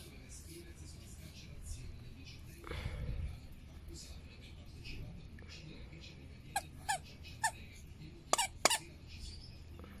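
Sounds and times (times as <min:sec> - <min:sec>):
dog toy squeaking: 0:06.8 - 0:07.6, 0:08.3 - 0:08.9.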